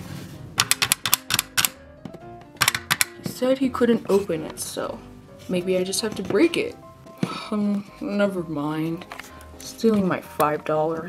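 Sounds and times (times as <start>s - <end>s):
quiet background music: 0.0s - 11.0s
sharp plastic clicks: 0.6s - 1.8s, 2.6s - 3.2s.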